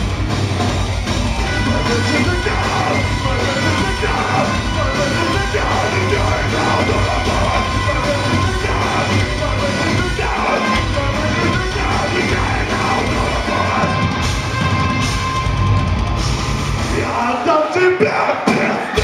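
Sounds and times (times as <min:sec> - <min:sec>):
deathcore band playing live: 0:00.0 - 0:19.0.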